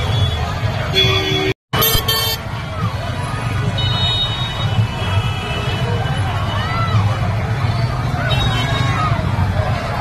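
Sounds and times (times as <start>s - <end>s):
street crowd and traffic rumble: 0.0s - 10.0s.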